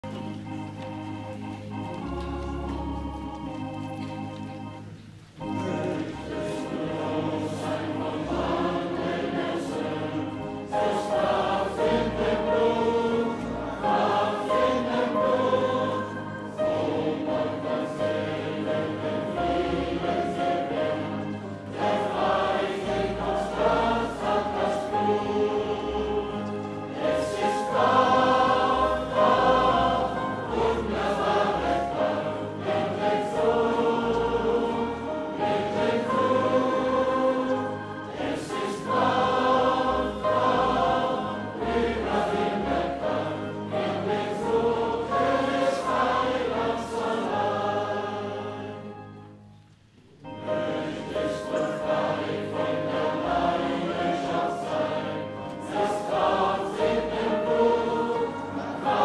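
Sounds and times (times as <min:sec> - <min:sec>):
congregation singing a hymn: 0:00.0 - 0:59.0.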